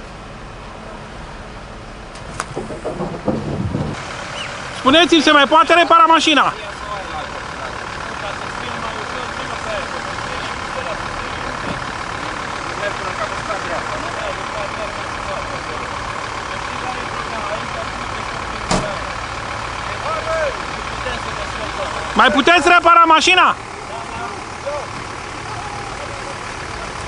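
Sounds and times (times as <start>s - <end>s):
vehicle engine idling: 0.0s - 27.0s
faint voices: 23.6s - 27.0s.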